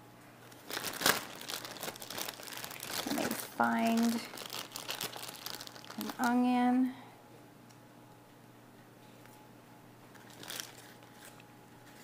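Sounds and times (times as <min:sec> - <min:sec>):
plastic bag crinkling: 0:00.4 - 0:06.6, 0:10.1 - 0:12.0.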